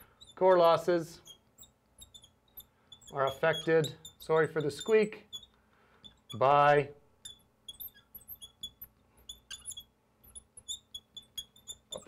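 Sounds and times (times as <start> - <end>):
marker squeaking on glass: 0.0 - 12.0.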